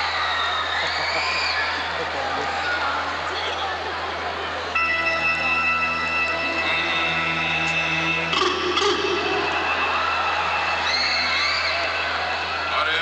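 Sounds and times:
sustained keyboard chords: 4.7s - 12.8s
percussion hits: 6.5s - 12.8s.

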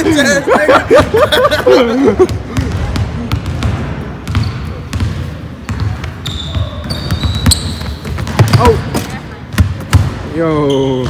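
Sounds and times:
basketball bouncing on hardwood: 2.6s - 8.8s.

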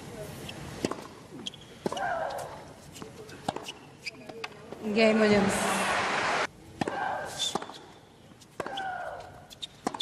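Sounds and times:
tennis ball hits: 6.8s - 7.9s, 8.5s - 9.2s, 9.8s - 10.0s.

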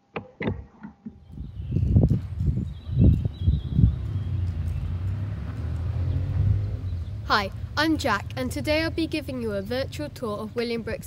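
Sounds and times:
vehicle engine rumbling: 1.3s - 11.0s.

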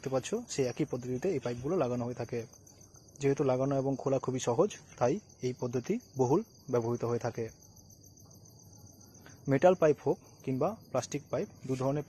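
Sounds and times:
man speaking: 0.0s - 2.5s, 9.5s - 12.0s
crickets chirping: 0.0s - 12.0s.

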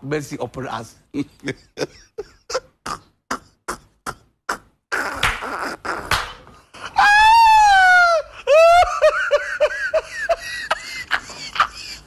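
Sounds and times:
person laughing: 1.2s - 4.2s, 6.8s - 12.0s
person wailing cry: 6.8s - 10.0s.

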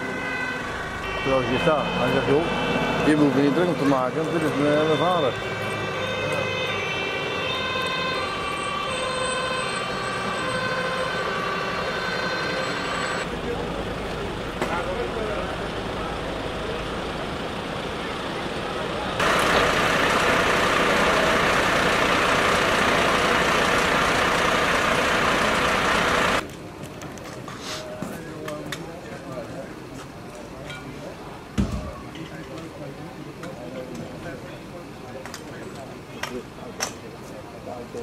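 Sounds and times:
fire engine two-tone siren: 0.0s - 26.4s
vehicle and outdoor noise: 0.0s - 38.0s.

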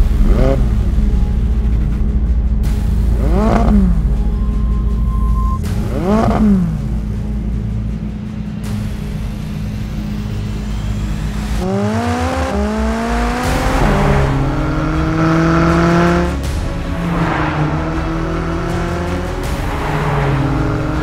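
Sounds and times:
car engine accelerating hard: 0.0s - 2.0s, 2.9s - 7.6s, 9.3s - 21.0s
music: 0.0s - 21.0s.

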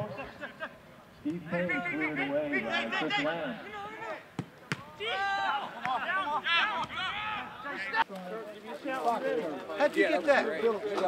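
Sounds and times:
men calling and shouting: 0.0s - 11.0s.

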